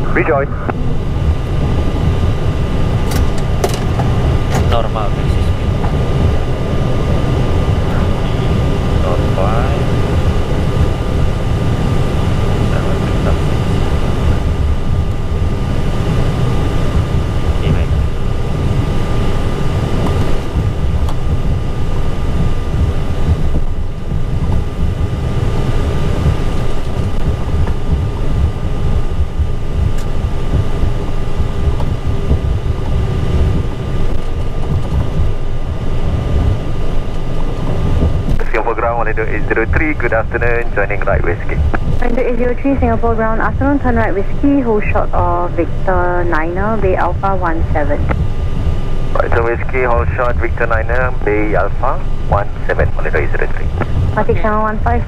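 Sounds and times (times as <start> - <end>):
high-pitched cockpit tones: 0.0 - 55.0
jet engines rumbling: 0.0 - 55.0.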